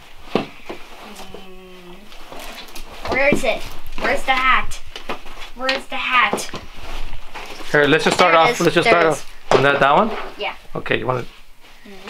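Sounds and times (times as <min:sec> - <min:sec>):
steady low hum: 0:00.0 - 0:12.0
fabric hats being handled: 0:06.2 - 0:09.4.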